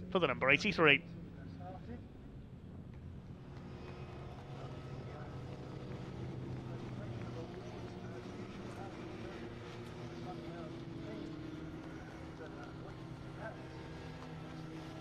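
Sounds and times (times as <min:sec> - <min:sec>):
truck engine driving past: 0:02.3 - 0:15.0.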